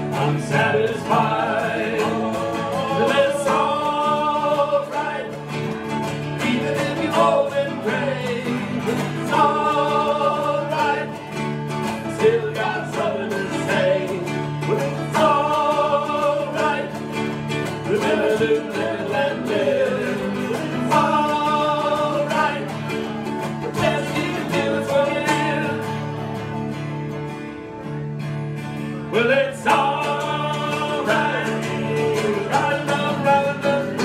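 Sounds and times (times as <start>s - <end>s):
held melody line: 0.0s - 34.0s
strummed acoustic guitars: 0.0s - 34.0s.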